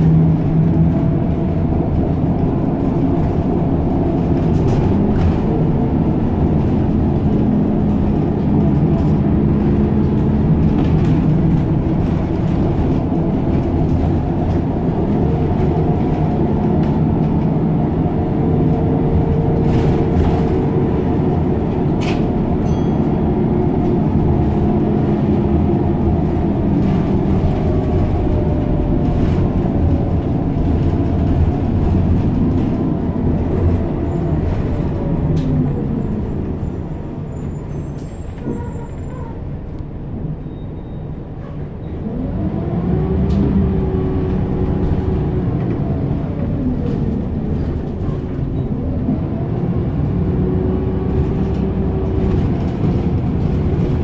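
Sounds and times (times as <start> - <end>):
bus engine from inside cabin: 0.0 - 54.0.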